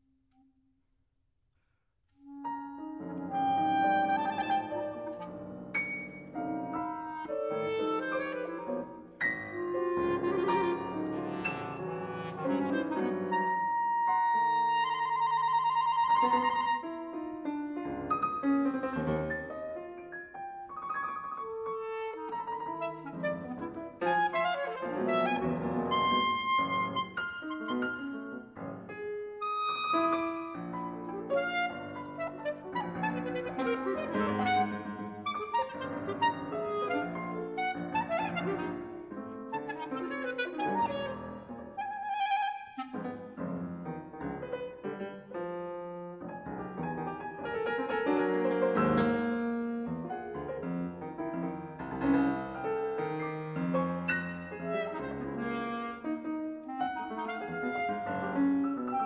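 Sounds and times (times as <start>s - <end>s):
clarinet: 2.2s - 59.0s
piano: 2.2s - 59.0s.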